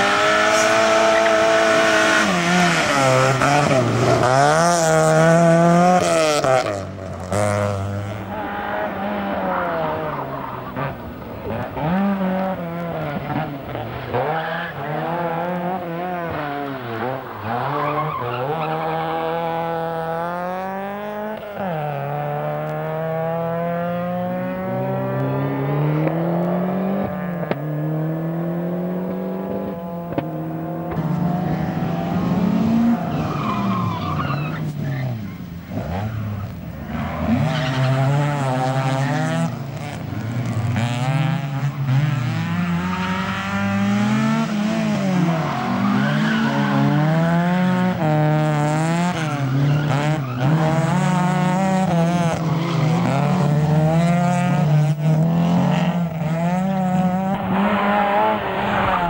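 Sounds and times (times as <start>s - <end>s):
rally car engine accelerating: 0.0s - 59.0s.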